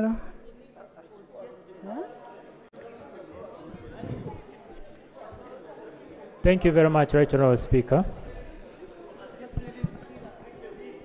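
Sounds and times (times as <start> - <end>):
indistinct background chatter: 0.0 - 11.0.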